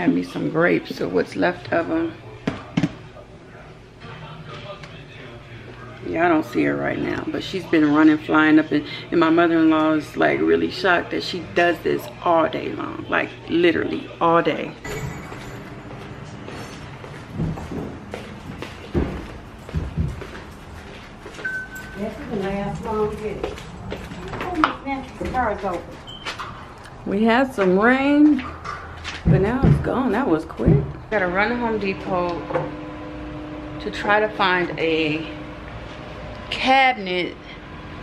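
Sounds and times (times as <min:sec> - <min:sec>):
faint indistinct voices: 0:00.0 - 0:17.2
steady low hum: 0:00.0 - 0:38.0
footsteps thumping: 0:14.9 - 0:26.4, 0:28.2 - 0:31.0
short steady beep: 0:21.4 - 0:22.0.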